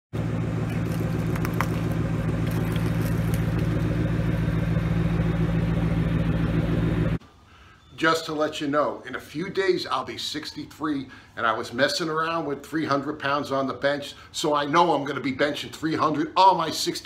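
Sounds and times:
car engine idling: 0.2 - 7.2.

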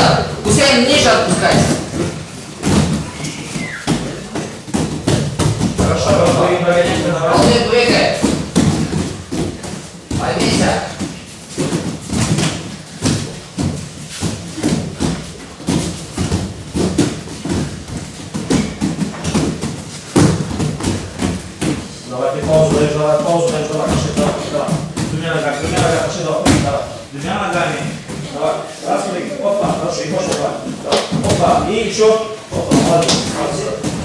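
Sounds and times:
voices in hall: 0.0 - 4.9, 5.5 - 11.2
bare feet landing on mats: 0.0 - 28.5, 29.5 - 34.0.

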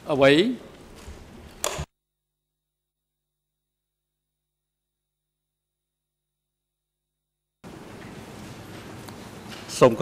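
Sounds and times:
microphone switch click: 1.6 - 1.9.

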